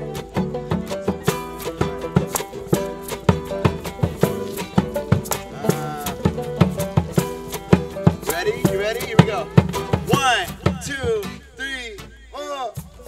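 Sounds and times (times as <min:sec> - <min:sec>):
fiddle: 0:00.0 - 0:10.7
djembe beat: 0:00.0 - 0:11.5
banjo: 0:00.0 - 0:12.2
acoustic guitars strummed: 0:00.0 - 0:13.0
person singing: 0:05.4 - 0:06.6.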